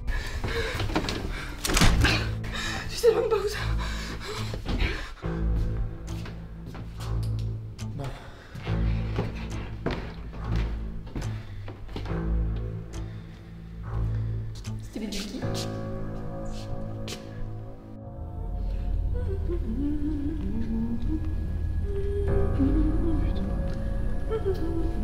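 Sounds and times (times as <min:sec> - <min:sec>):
pulsing horror score drone: 0:17.8 - 0:25.0.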